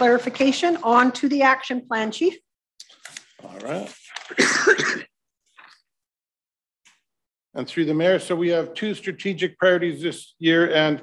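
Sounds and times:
man coughing into microphone: 0:04.3 - 0:05.2.

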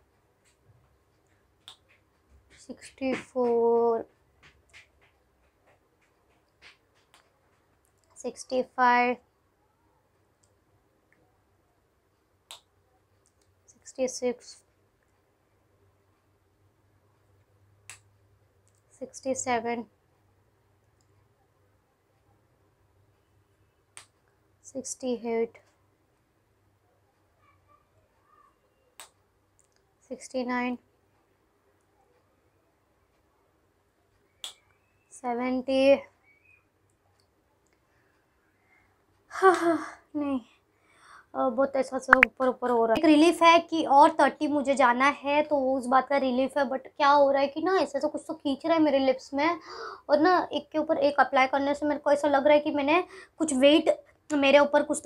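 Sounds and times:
woman speaking: 0:13.8 - 0:14.6, 0:19.0 - 0:19.9, 0:30.1 - 0:30.8, 0:41.4 - 0:55.0.

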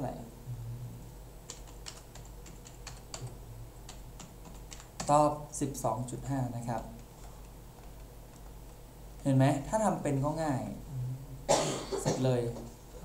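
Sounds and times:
keyboard keys clicking: 0:01.5 - 0:03.3, 0:03.9 - 0:05.2.

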